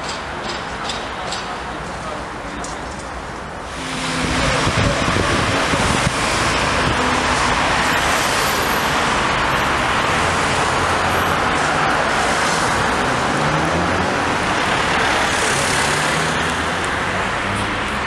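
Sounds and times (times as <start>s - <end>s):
cars passing: 1.5s - 18.0s.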